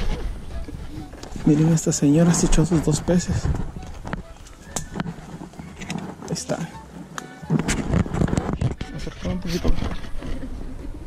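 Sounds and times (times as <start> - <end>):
people talking indistinctly: 1.1 - 10.2.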